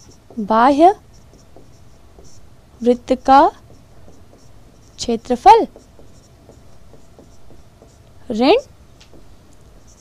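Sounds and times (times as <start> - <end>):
pen scratching handwriting: 0.0 - 10.0
person speaking: 0.2 - 8.8.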